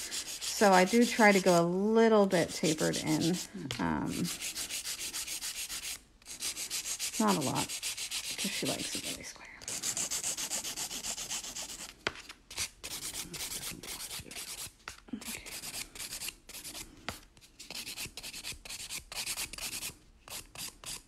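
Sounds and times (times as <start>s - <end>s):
nail file rubbing on nail: 0.0s - 1.5s, 2.5s - 11.9s, 12.5s - 16.9s, 17.6s - 21.0s.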